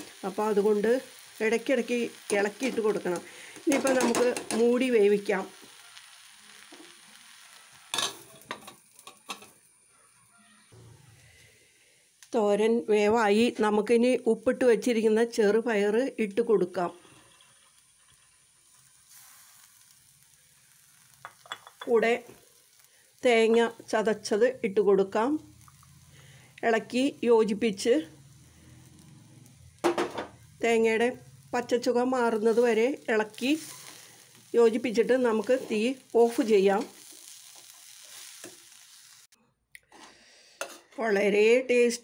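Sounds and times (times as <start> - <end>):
food sizzling in a pan: 0.0 - 39.4.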